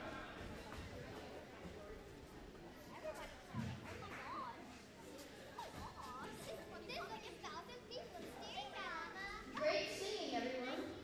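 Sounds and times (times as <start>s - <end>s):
children chattering: 2.6s - 11.0s
high child's voice: 6.2s - 10.9s.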